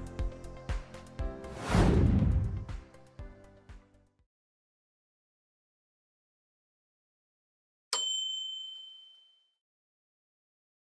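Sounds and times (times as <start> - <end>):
bright bell ding: 8.0 - 9.6.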